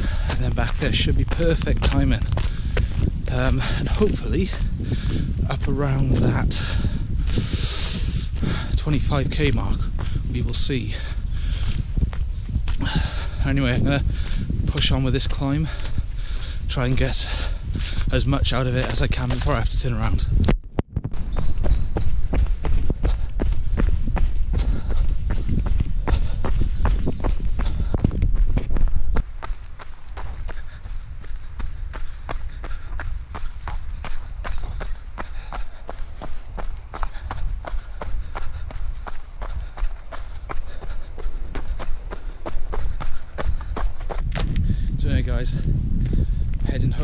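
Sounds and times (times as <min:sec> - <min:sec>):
running footsteps on dirt: 0:00.0 - 0:47.0.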